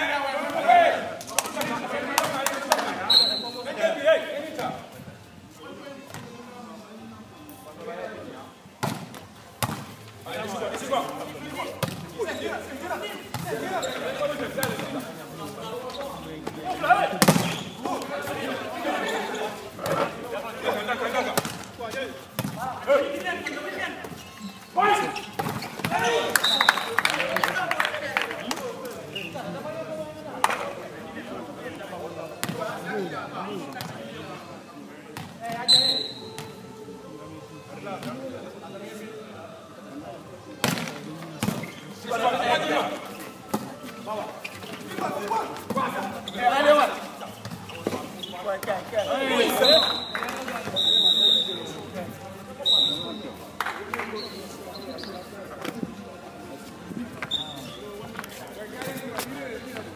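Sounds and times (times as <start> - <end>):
voices calling and shouting: 0.0 - 6.8, 9.6 - 59.9
referee's whistle blast: 3.1 - 3.7, 35.6 - 36.3, 49.6 - 51.8, 52.6 - 53.2
volleyball slaps: 17.2 - 17.6.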